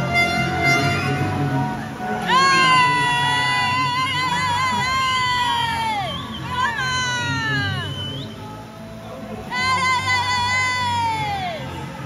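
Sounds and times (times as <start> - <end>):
high-pitched drawn-out yell: 0.0 - 7.9, 9.5 - 12.0
crowd cheering: 0.0 - 8.8
steady tones: 0.0 - 11.0.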